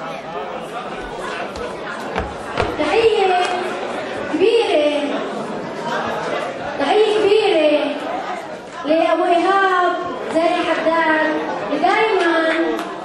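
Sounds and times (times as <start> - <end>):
voices talking in a hall: 0.0 - 13.0.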